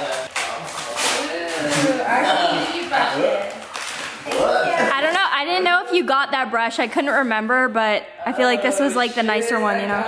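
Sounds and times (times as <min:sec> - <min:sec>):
wrapping paper rustling and tearing: 0:00.0 - 0:04.5
people talking: 0:04.3 - 0:10.0.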